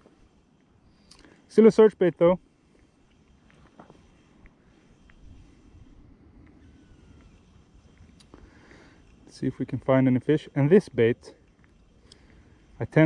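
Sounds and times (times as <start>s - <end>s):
fishing reel clicks: 6.4s - 13.0s.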